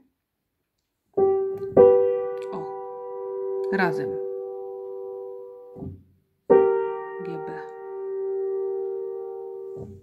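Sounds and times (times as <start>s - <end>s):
piano chord ringing: 1.2s - 10.0s.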